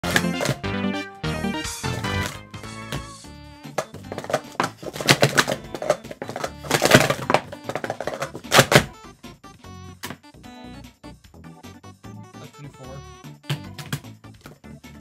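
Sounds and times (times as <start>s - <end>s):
plastic cups clattering: 0.0s - 0.6s, 2.0s - 3.1s, 3.7s - 8.9s
background music: 0.0s - 15.0s.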